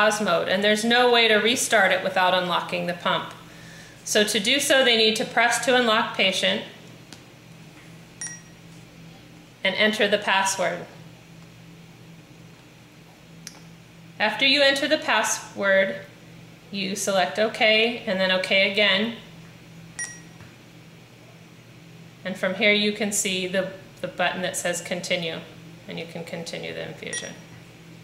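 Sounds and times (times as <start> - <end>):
infusion pump short beep: 8.2 - 8.6, 20.0 - 20.4, 27.1 - 27.5.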